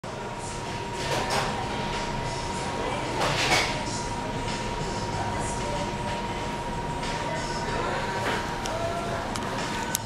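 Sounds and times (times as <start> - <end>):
background hum and hiss: 0.0 - 10.0.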